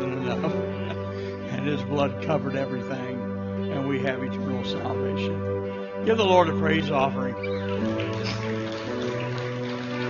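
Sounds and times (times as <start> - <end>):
soft worship band music: 0.0 - 10.0.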